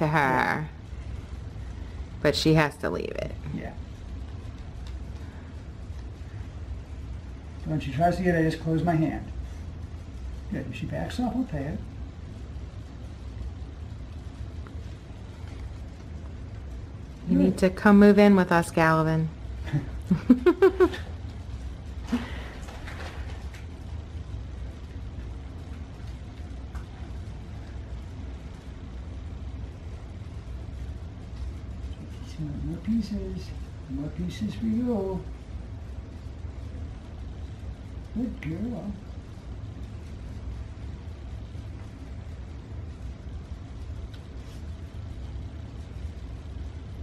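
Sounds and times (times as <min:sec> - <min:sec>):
low room rumble: 0:00.0 - 0:47.0.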